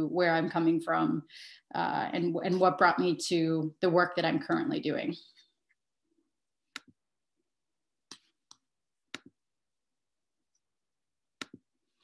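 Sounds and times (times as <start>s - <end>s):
computer mouse clicks: 6.7s - 7.0s.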